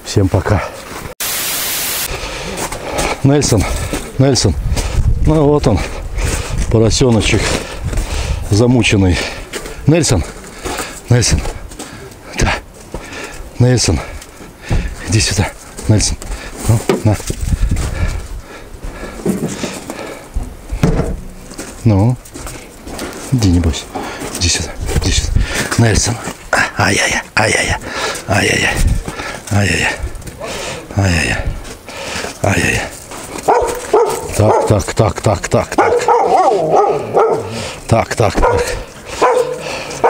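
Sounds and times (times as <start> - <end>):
loud static hiss: 1.2 - 3.4
knocks and shuffling on gravel: 2.4 - 40.0.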